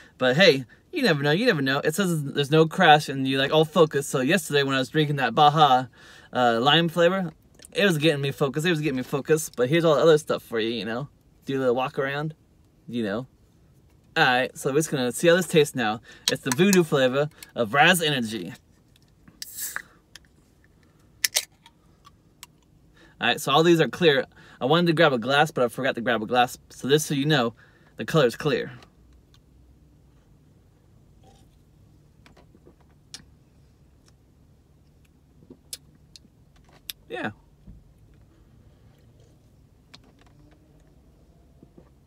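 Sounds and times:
low steady rumble: 0:00.0 - 0:42.0.

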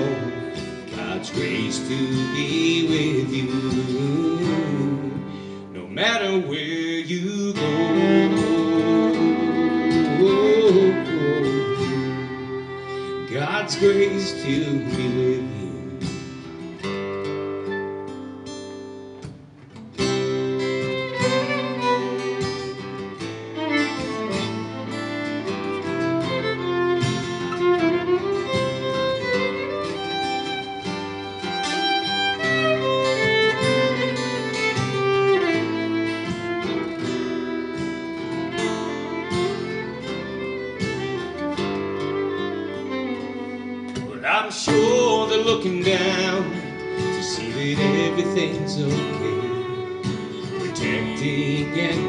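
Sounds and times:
fiddle bowing: 0:00.0 - 0:05.6, 0:07.3 - 0:16.7, 0:20.0 - 0:52.0
strummed acoustic guitar: 0:00.0 - 0:52.0.

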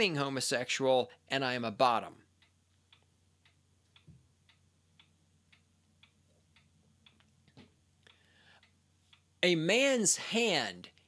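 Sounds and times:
low steady hum: 0:00.0 - 0:11.0
faint ticking: 0:02.1 - 0:09.5.

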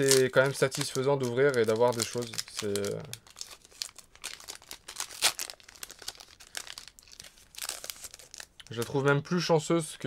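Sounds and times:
foil wrapper tearing and crinkling: 0:00.0 - 0:09.0.

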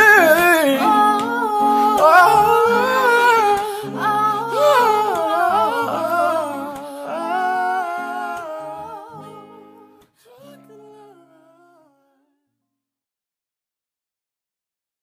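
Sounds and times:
acoustic guitar chords: 0:00.0 - 0:12.0
man and woman singing: 0:00.0 - 0:12.0.

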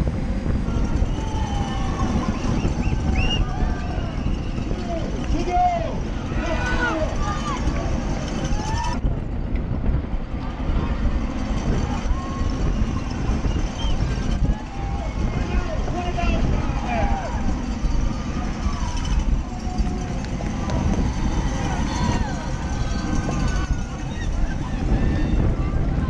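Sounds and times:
spectators shouting and cheering: 0:00.0 - 0:09.1, 0:09.8 - 0:26.0
wind rush on microphone: 0:00.0 - 0:26.0.

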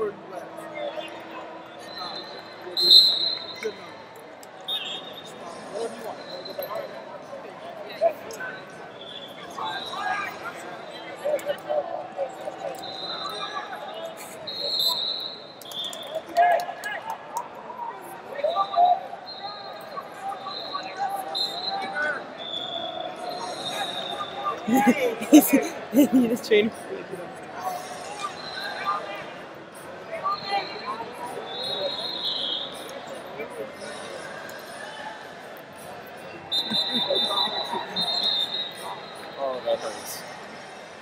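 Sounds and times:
hubbub of distant voices: 0:00.0 - 0:41.0
referee whistle blasts: 0:02.0 - 0:03.7, 0:36.5 - 0:38.9.

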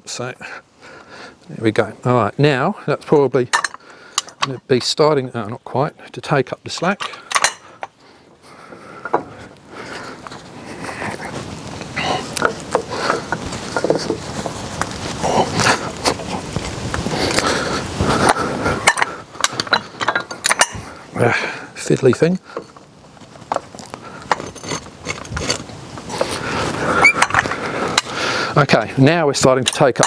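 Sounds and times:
metal clinking and knocking: 0:03.2 - 0:04.6, 0:06.8 - 0:08.0, 0:18.8 - 0:20.8, 0:23.5 - 0:25.7.

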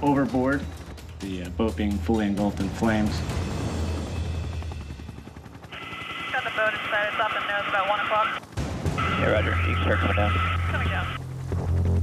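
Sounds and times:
helicopter cabin drone: 0:00.0 - 0:12.0.

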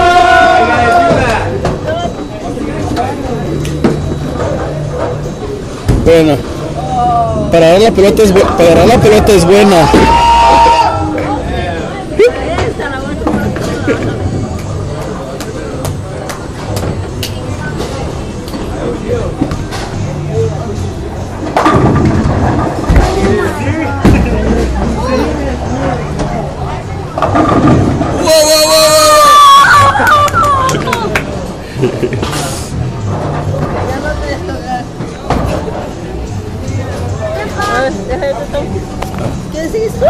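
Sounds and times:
murmur of voices: 0:00.0 - 0:40.0
bowling balls and pins clacking: 0:21.4 - 0:25.0, 0:27.1 - 0:28.2.

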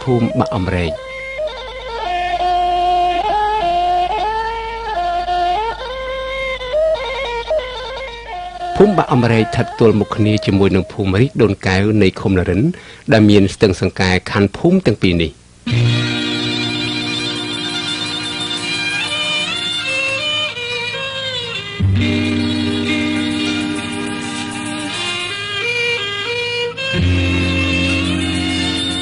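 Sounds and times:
musical accompaniment: 0:00.0 - 0:11.4, 0:15.7 - 0:29.0.

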